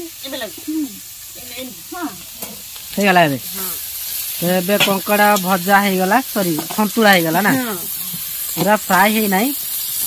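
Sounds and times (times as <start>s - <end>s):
crab sizzling in oil: 0.0s - 10.0s.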